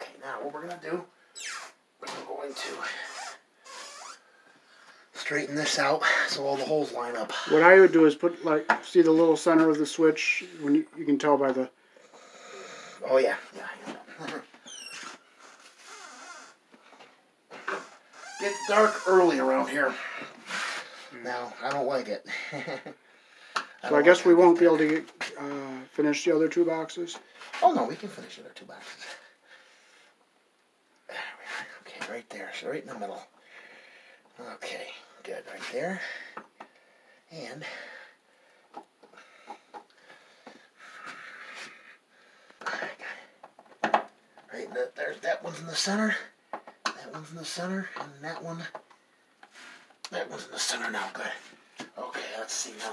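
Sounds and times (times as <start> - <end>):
man breathing heavily: 22.3 - 23.8, 33.4 - 34.3, 35.9 - 43.4.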